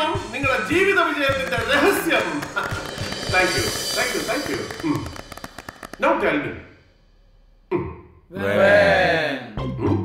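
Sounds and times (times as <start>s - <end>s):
man talking: 0.0s - 5.2s
background music: 0.0s - 10.0s
short taps or knocks: 1.2s - 6.4s.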